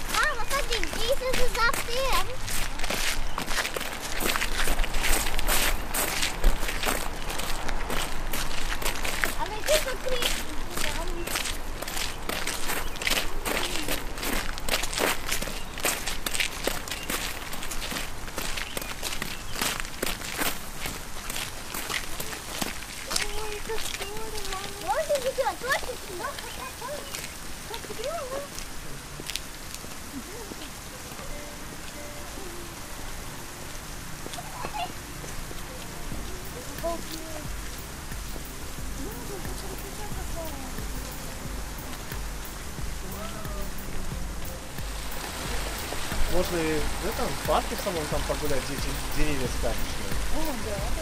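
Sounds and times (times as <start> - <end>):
voices: 0.0 - 2.5, 9.3 - 14.2, 22.1 - 29.2, 29.8 - 51.0
scuffing footsteps: 0.0 - 31.2, 33.6 - 51.0.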